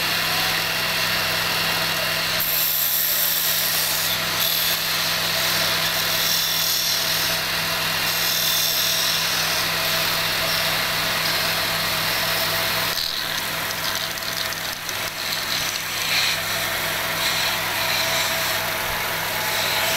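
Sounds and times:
lathe motor humming: 0:00.0 - 0:19.9
tool scraping spinning wood: 0:02.2 - 0:19.9.

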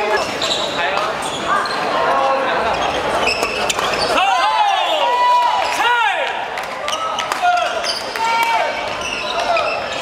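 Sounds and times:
voices in a hall: 0:00.0 - 0:10.0
shoes squeaking on wooden floor: 0:02.7 - 0:04.2.

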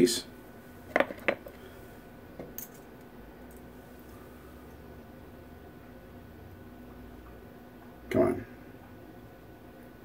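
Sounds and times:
small metal parts clicking: 0:02.5 - 0:02.9.

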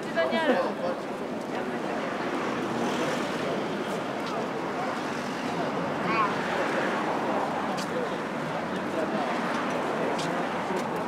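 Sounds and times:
faint voices of passers-by: 0:00.0 - 0:11.0
road traffic: 0:00.0 - 0:11.0.

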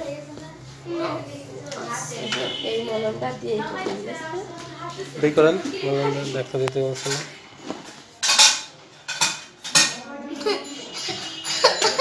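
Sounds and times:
metal instruments clinking: 0:06.8 - 0:12.0.

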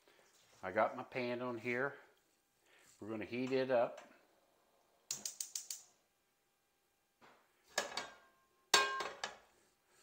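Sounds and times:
metal cookware clanking: 0:07.8 - 0:09.4.

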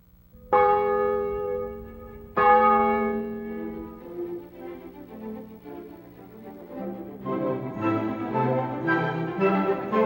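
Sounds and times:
faint steady low tone: 0:00.0 - 0:06.6
church bell ringing: 0:00.4 - 0:05.0.

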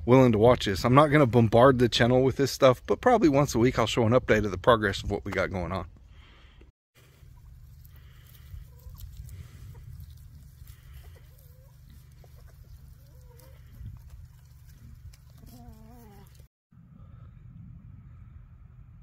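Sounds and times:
chickens clucking: 0:07.2 - 0:16.4
low rumble: 0:16.8 - 0:19.0.

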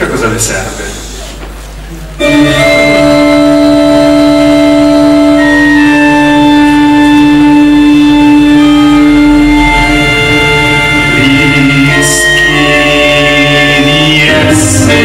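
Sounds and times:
instrumental music with held notes: 0:02.0 - 0:15.0.

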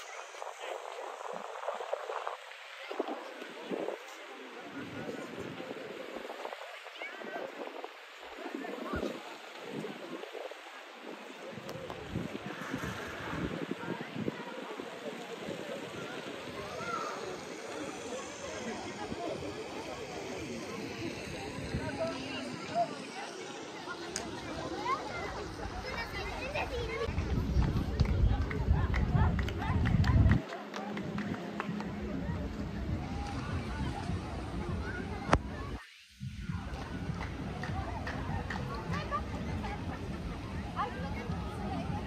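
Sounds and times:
faint distant voices: 0:00.0 - 0:42.0
people talking: 0:00.0 - 0:42.0
rushing noisy haze: 0:00.0 - 0:42.0.

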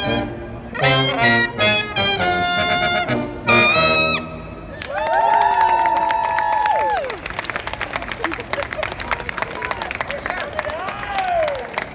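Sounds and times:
crowd cheering: 0:04.7 - 0:11.9
people clapping: 0:04.7 - 0:11.9.

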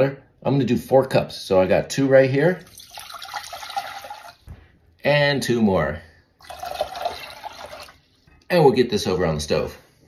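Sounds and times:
water pouring into saucepan: 0:02.6 - 0:04.4, 0:06.4 - 0:08.2.

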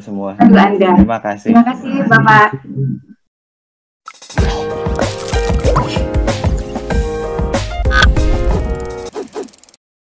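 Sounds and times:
upbeat music with low thumps: 0:04.4 - 0:08.8.

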